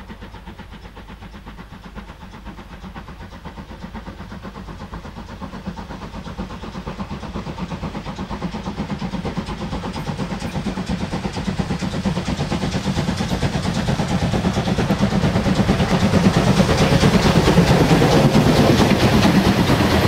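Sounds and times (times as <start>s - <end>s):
steam locomotive chuffing: 0.0s - 20.0s.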